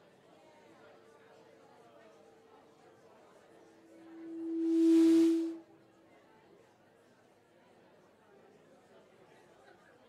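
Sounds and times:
pa system feedback tone: 3.8s - 5.7s.

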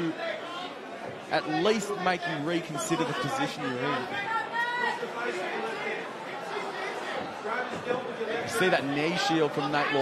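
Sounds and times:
spectators talking and shouting: 0.0s - 10.0s.

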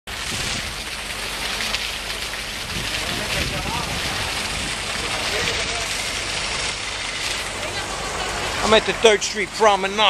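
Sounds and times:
fountain water splashing: 0.1s - 10.0s.

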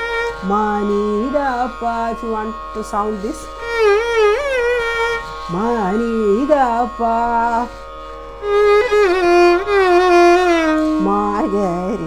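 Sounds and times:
violin playing: 0.0s - 12.0s.

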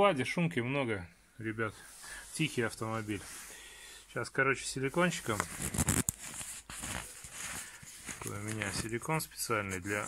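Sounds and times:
rustling and handling clicks: 5.2s - 10.0s.

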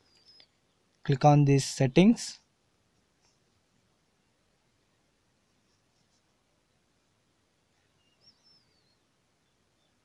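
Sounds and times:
faint room hiss: 0.0s - 10.0s
high wavering chirp: 7.8s - 9.1s.

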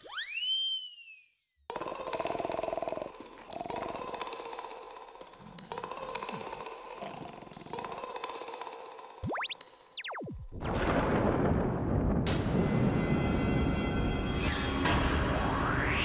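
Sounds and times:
loud rattling snoring: 1.7s - 9.2s.

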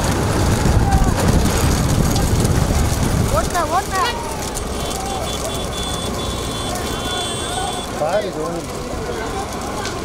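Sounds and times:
rumble of carts and vehicles: 0.0s - 10.0s
faint shouting voices: 0.3s - 1.8s, 3.3s - 10.0s.

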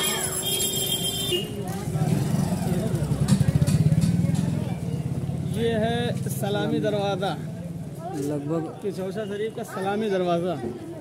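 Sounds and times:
voices: 0.0s - 11.0s
motorcycle passing by: 1.6s - 7.8s.

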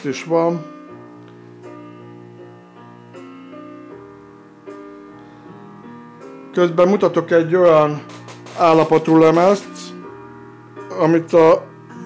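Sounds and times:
instrumental music: 0.0s - 12.0s.

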